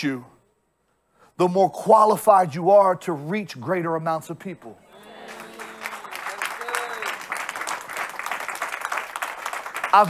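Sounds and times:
crowd applauding: 4.9 - 10.0.

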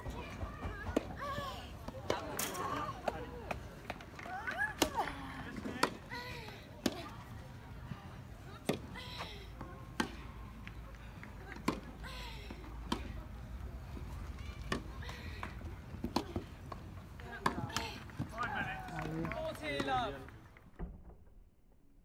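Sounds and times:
people talking: 0.0 - 16.5
tennis balls struck by rackets: 0.3 - 7.2, 8.5 - 20.2.

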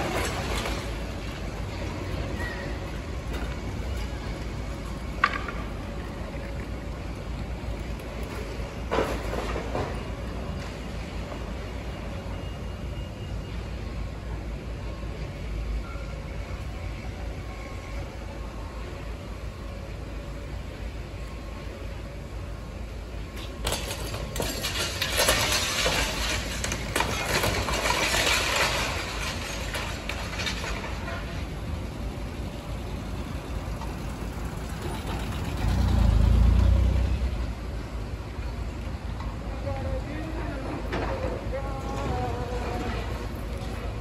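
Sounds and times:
concrete breaking and debris clattering: 0.0 - 2.7, 23.6 - 31.5
demolition excavator rumble: 0.0 - 44.0.

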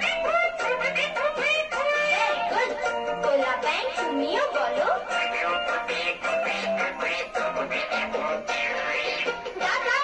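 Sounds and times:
person singing children's song: 0.0 - 10.0.

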